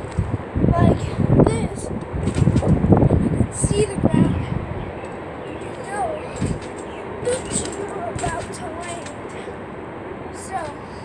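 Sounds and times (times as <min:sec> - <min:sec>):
short crackles: 0:02.0 - 0:02.9, 0:05.0 - 0:09.5
faint voice: 0:05.6 - 0:06.6, 0:07.2 - 0:09.6, 0:10.3 - 0:11.0.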